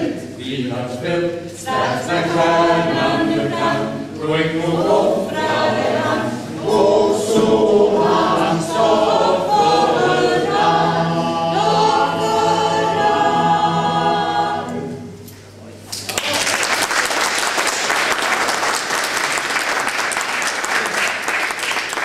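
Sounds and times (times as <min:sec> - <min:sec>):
mixed choir singing a cappella: 0:00.0 - 0:15.2.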